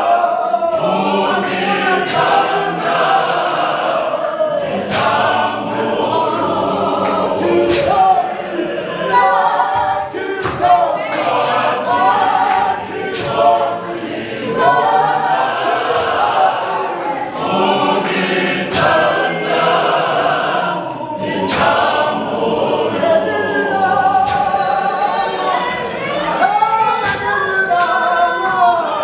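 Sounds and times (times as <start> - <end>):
choir singing gospel: 0.0 - 29.0.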